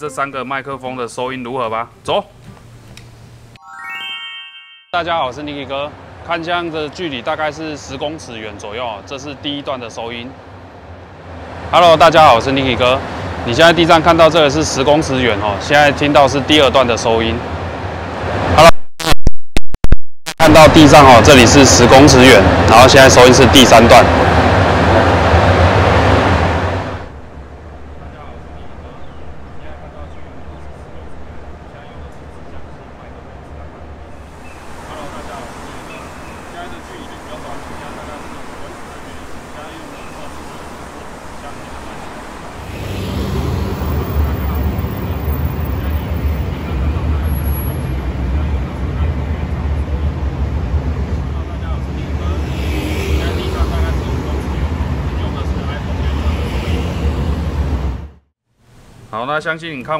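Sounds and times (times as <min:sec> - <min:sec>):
city road traffic rumble: 0:00.0 - 0:03.6, 0:05.2 - 0:18.6, 0:20.4 - 0:59.9.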